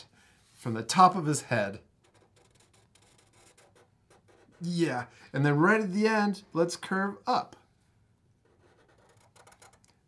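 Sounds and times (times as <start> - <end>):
marker scratching on paper: 2.0 - 4.7, 8.4 - 9.9.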